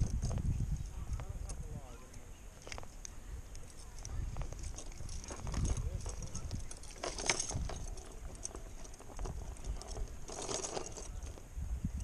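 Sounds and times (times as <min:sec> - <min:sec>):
handling clicks and knocks: 0:01.2 - 0:11.4.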